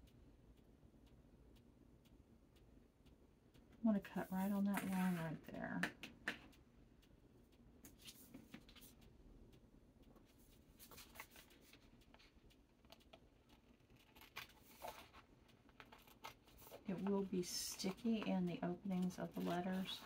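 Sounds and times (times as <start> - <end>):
sheet crinkling and clicking: 10.8 - 18.3.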